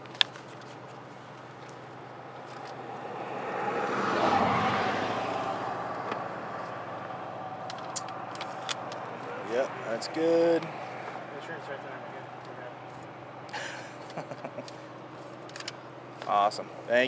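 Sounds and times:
vehicle passing by: 2.2s - 15.3s.

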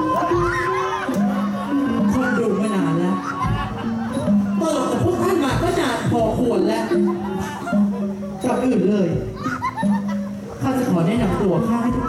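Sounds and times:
faint backing music: 0.0s - 12.0s.

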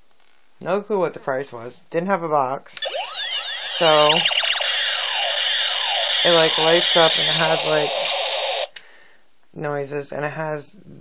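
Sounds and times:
toy laser gun sound effect: 2.8s - 8.7s.

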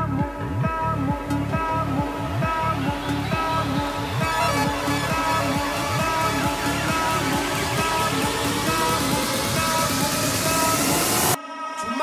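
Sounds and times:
electronic dance music: 0.0s - 12.0s
rising synth hiss: 1.2s - 11.4s.

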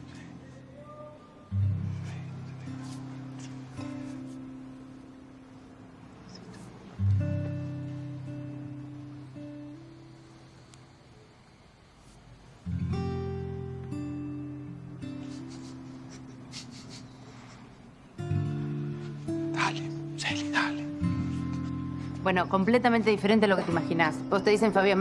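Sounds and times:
slow acoustic guitar chords: 0.0s - 11.1s, 12.4s - 25.0s.

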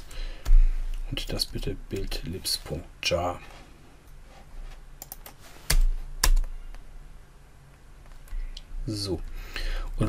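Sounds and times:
computer keyboard keystrokes: 5.0s - 6.5s.

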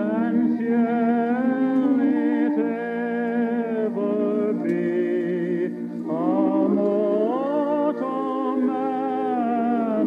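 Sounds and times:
slow hymn melody with vibrato: 0.0s - 10.0s
sustained organ chords: 0.0s - 10.0s.

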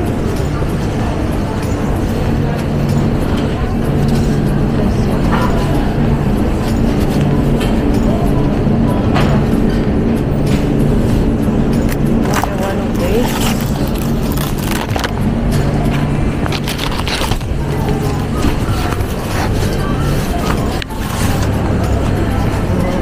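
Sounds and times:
low hum and rumble: 0.0s - 23.0s.

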